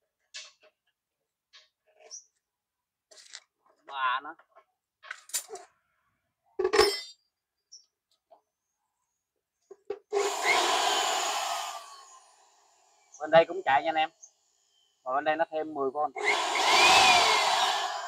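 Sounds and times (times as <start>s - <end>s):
power tool whining and coasting down: 10.1s - 15.0s, 16.2s - 18.0s.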